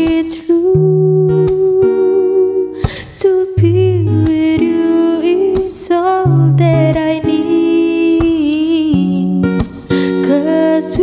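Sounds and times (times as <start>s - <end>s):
acoustic guitar: 0.0s - 11.0s
woman singing a ballad: 0.0s - 11.0s.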